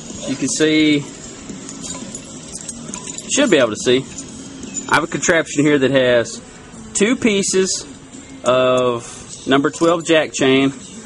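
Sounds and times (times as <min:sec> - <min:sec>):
metal chain clinking: 0:00.0 - 0:11.0.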